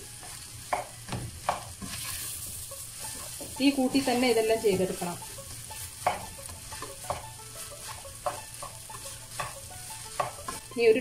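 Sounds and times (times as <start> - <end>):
light sizzle: 0.0 - 11.0
spatula scraping a wok: 0.0 - 11.0.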